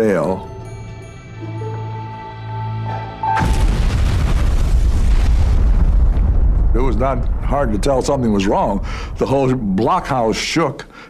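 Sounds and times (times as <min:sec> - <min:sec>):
explosion rumble: 0:03.4 - 0:10.5.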